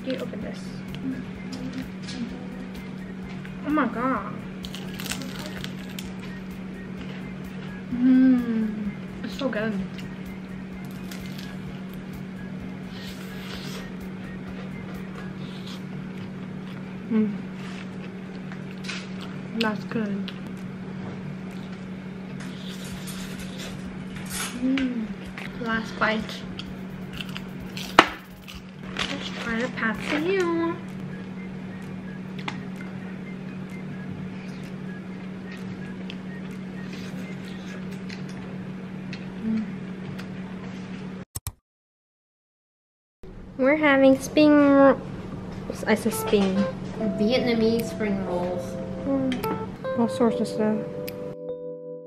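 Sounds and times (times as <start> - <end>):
steady low hum: 0.0 - 41.2, 43.2 - 51.6
quiet eating sounds: 0.9 - 9.1, 9.9 - 12.2, 12.8 - 41.0
crunching fried food: 4.6 - 6.2, 10.8 - 11.7, 27.0 - 30.3
chewing: 10.9 - 11.6, 26.6 - 30.3, 35.5 - 38.4.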